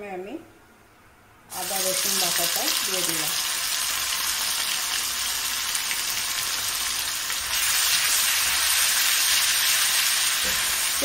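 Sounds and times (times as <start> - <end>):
paste sizzling in hot oil: 1.5 - 11.0.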